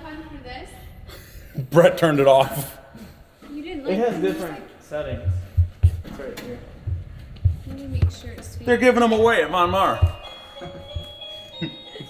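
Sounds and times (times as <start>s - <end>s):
tinny electronic christmas tune: 8.7s - 12.0s.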